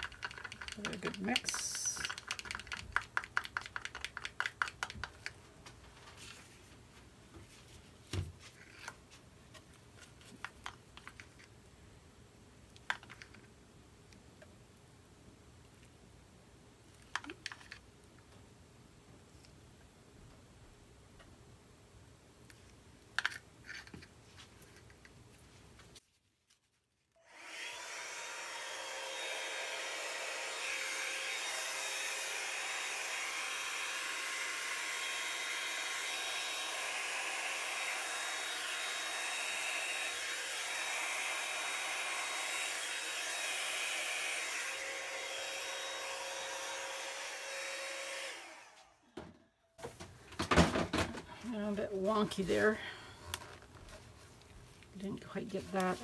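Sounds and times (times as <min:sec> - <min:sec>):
hair dryer running: 0:00.7 - 0:02.2, 0:27.3 - 0:49.3.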